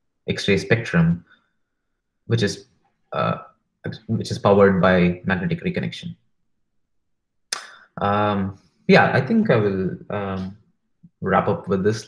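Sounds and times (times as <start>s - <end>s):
man talking: 0.3s - 1.3s, 2.3s - 6.2s, 7.6s - 12.0s.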